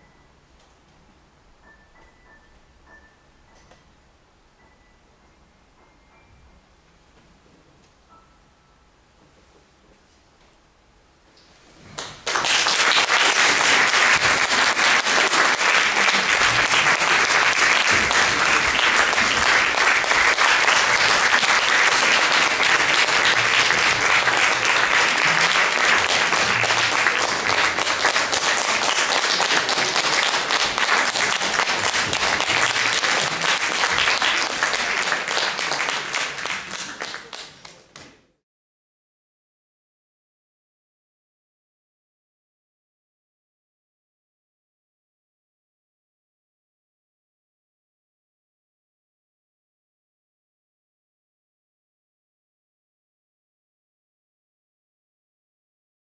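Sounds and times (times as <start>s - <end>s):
audience applauding: 12.0s - 38.0s.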